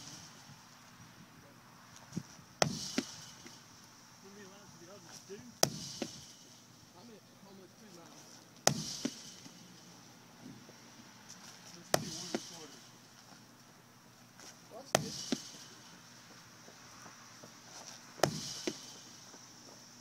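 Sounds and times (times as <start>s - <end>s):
ball knocking on rebound: 2.6s - 3.6s, 5.6s - 6.2s, 8.7s - 9.2s, 12.0s - 12.7s, 15.0s - 15.6s, 18.2s - 18.9s
medicine ball smacking concrete wall: 2.6s - 3.6s, 5.5s - 6.4s, 8.6s - 9.6s, 11.8s - 12.8s, 14.4s - 15.9s, 18.2s - 19.2s.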